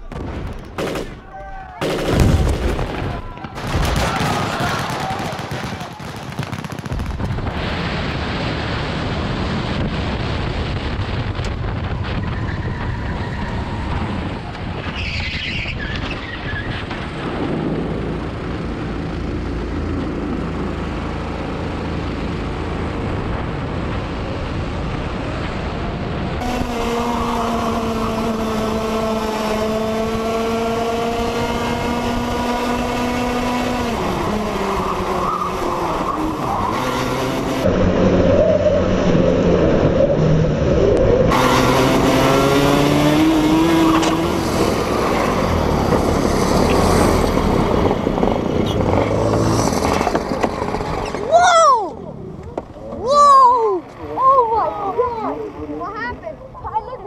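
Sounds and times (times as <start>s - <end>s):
go-kart engines racing: 11.4s - 57.0s
tyre noise: 33.8s - 55.1s.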